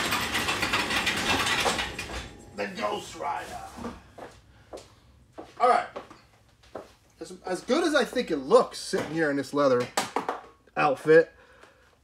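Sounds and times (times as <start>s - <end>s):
garage door rattling closed: 0.0s - 2.4s.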